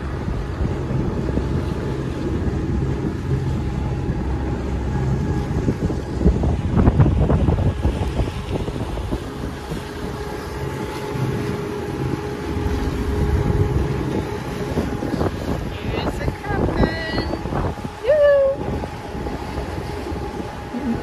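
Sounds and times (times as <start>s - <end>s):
low steady hum: 0.0s - 21.0s
water rushing past hull: 0.0s - 21.0s
wind buffeting microphone: 0.0s - 21.0s.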